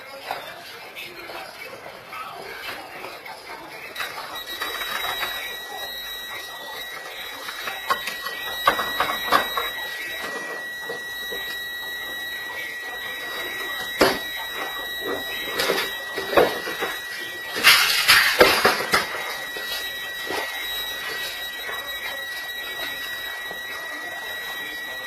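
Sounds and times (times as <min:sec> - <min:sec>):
high-pitched electronic alarm tone: 0:02.2 - 0:25.0.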